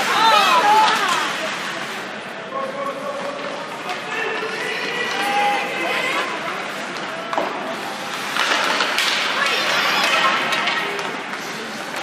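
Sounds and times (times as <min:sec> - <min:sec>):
hockey stick cracking: 0:00.0 - 0:01.8, 0:06.8 - 0:12.0
skates scraping ice: 0:00.0 - 0:12.0.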